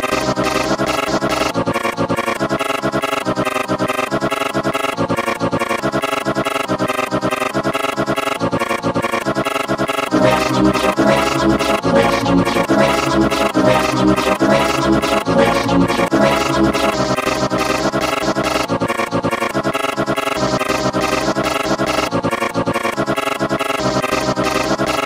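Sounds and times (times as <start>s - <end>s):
chopped vocoded voice remix: 10.1s - 18.8s.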